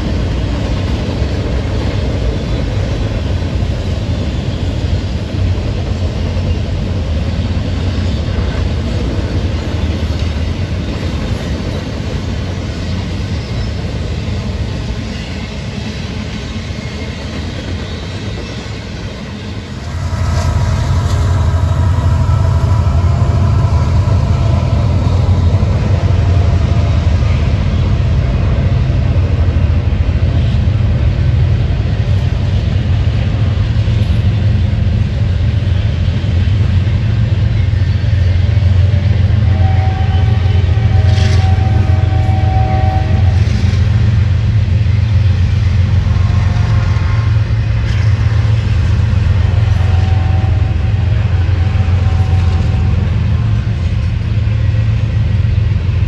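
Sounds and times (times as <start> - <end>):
freight train wheels rumbling: 0.0 - 56.0.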